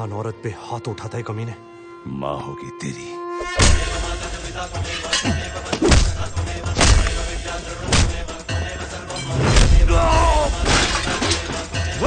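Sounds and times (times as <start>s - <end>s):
dramatic background music: 0.0s - 12.0s
person crying out: 9.9s - 10.6s.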